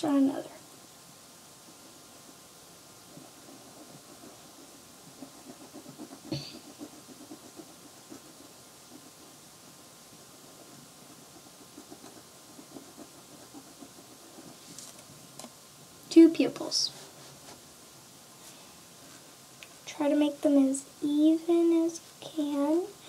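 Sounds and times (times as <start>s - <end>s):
pen scratching on paper: 3.0s - 9.4s, 10.3s - 15.0s.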